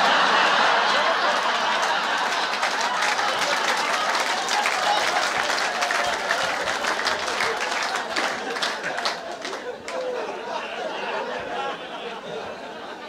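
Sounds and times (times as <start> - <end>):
audience applauding: 0.0 - 10.5
crowd voices: 0.0 - 13.0.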